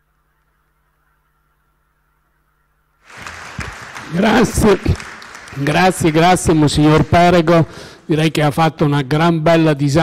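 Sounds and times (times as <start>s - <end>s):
audience applause in a hall: 3.0s - 8.0s.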